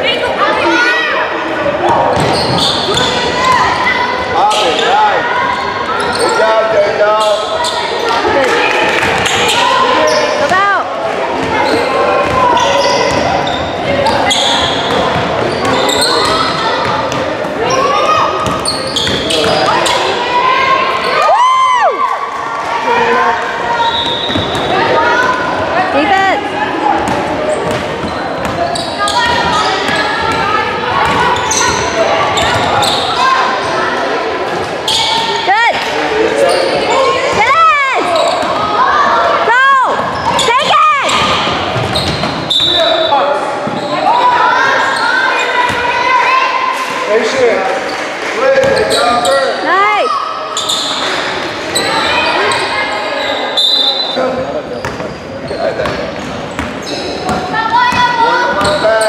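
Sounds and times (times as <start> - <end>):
voices echoing in a gym: 0.0 - 59.0
sneakers squeaking on court: 1.9 - 3.9, 5.5 - 6.6, 7.2 - 8.3, 9.1 - 10.7, 11.3 - 20.2, 23.6 - 25.5, 26.9 - 33.8, 34.5 - 38.8, 39.9 - 44.2, 47.9 - 49.6, 50.5 - 59.0
basketball dribbling: 55.8 - 58.8.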